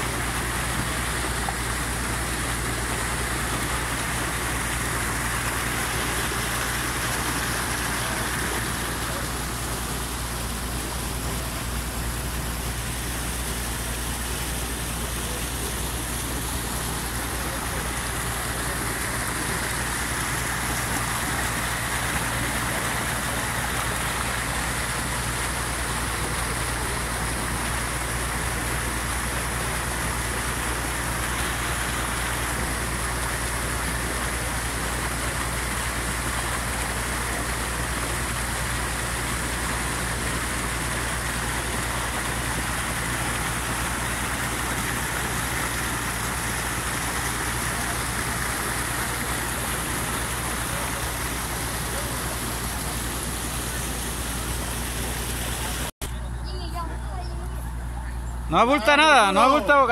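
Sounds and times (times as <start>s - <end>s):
floodwater rushing through channel: 0.0s - 55.9s, 57.8s - 59.9s.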